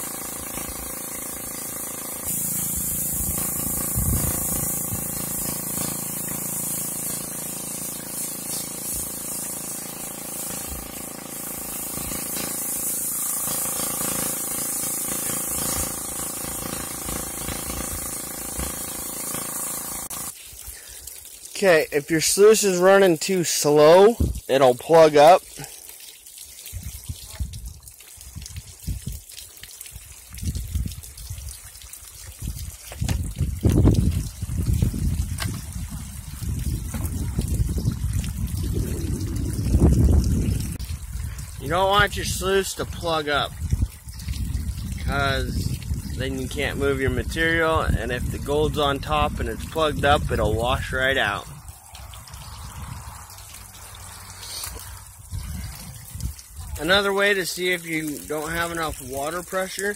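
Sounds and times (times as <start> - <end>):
water trickling and splashing: 0.0 - 59.9
low rumble: 34.9 - 41.2.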